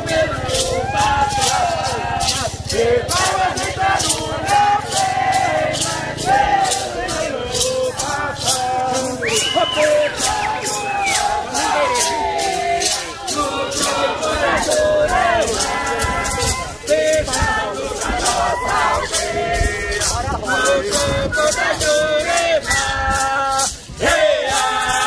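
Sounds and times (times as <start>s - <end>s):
group of voices singing: 0.0s - 25.0s
rattle beat: 0.0s - 25.0s.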